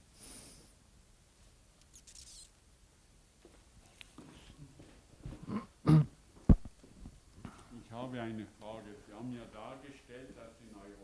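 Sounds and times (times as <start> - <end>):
faint short hiss: 0.0 - 0.8, 1.8 - 2.6.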